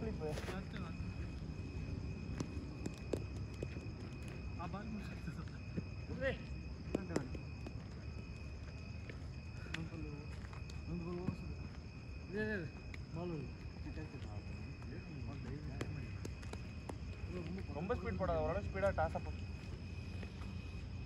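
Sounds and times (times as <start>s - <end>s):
high-pitched insect call: 0.0s - 21.0s.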